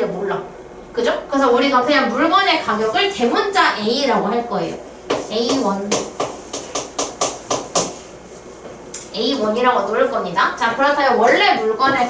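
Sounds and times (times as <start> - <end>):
quick taps of writing on a board: 5.1 - 8.0.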